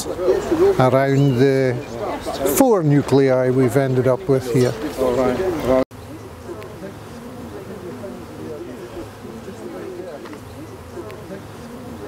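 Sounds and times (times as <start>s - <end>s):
bees buzzing: 5.9s - 12.0s.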